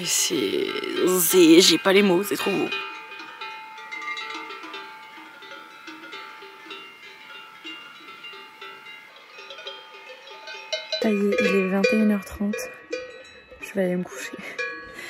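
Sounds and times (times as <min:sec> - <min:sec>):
cattle bells clanking: 0:00.0 - 0:15.0.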